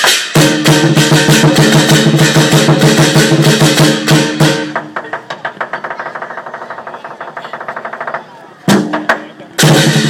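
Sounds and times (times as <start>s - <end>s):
drum beaten in fast rhythm: 0.0s - 10.0s.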